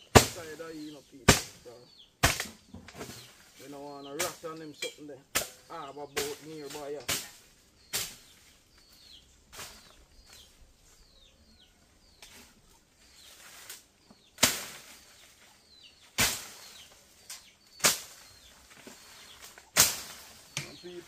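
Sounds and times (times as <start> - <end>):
bird chirping: 0.0 - 21.0
machete chopping brush: 0.1 - 0.6, 1.3 - 3.3, 4.2 - 4.5, 5.3 - 8.5, 9.5 - 10.4, 13.3 - 15.4, 16.0 - 21.0.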